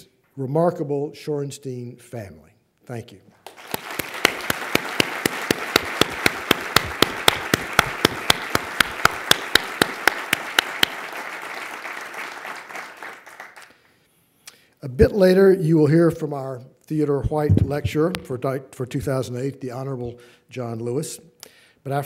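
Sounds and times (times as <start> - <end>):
audience applauding: 3.4 - 13.8
close hand claps: 3.4 - 13.9.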